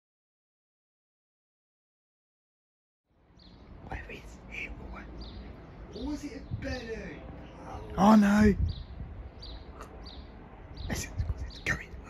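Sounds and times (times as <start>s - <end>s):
birds chirping: 3.1s - 12.0s.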